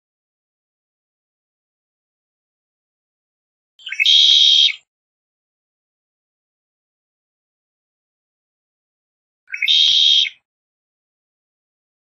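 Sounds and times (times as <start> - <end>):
blackbird buzzy trill song: 3.8 - 4.9, 9.5 - 10.4.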